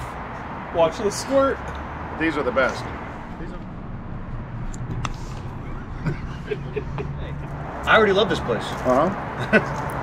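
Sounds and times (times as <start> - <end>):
traffic engine hum: 0.0 - 10.0.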